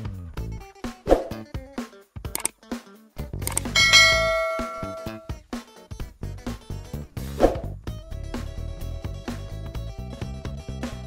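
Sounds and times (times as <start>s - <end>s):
bell ding ringing out: 3.6s - 5.3s.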